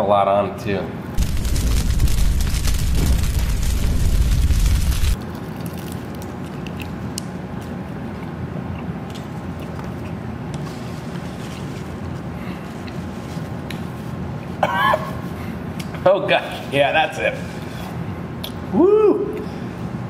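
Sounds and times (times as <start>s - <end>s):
steady low background: 1.1s - 5.2s
deep rumbling boom: 1.2s - 5.2s.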